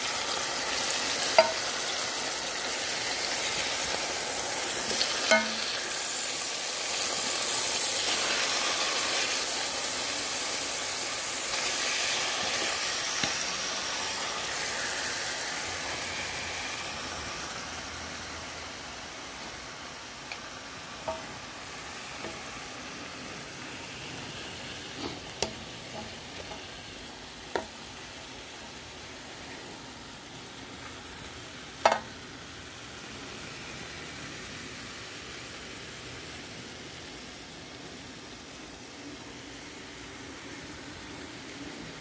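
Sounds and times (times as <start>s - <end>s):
meat sizzling in a pan: 0.0s - 42.0s.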